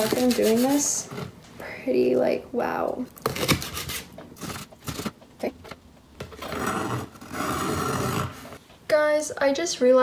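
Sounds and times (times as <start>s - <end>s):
blade scraping across board: 6.4s - 8.6s.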